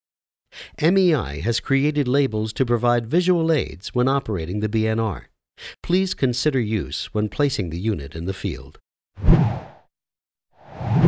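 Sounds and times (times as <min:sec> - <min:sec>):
whoosh sound effect: 0:10.7 - 0:11.0.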